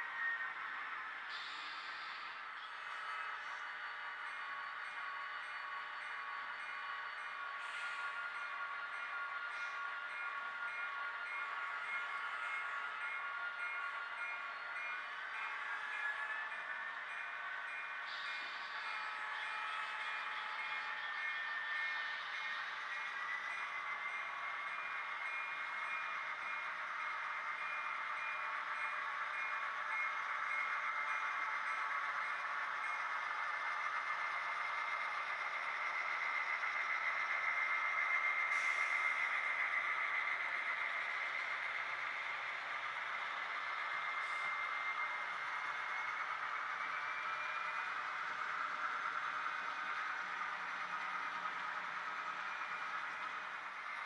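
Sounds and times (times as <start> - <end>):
model locomotive engine sound: 0.0 - 54.0.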